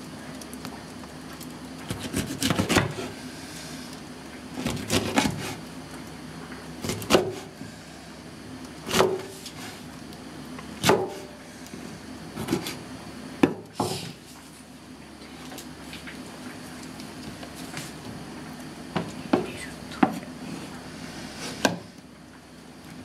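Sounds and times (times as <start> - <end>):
knife chopping on wooden board: 1.9 - 3.1, 4.6 - 5.5, 6.8 - 7.5, 8.9 - 9.3, 10.8 - 11.3, 12.4 - 12.8, 13.4 - 14.1, 21.6 - 21.8.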